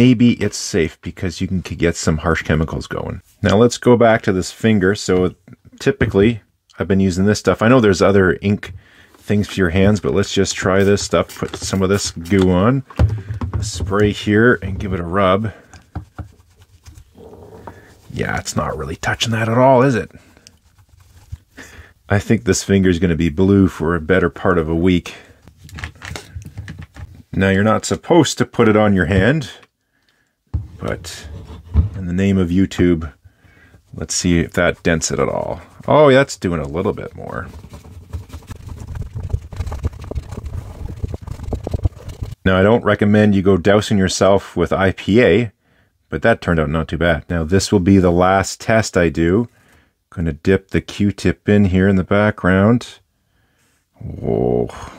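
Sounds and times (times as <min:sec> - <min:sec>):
rag rubbing on fingertip: 0:15.6 - 0:18.8.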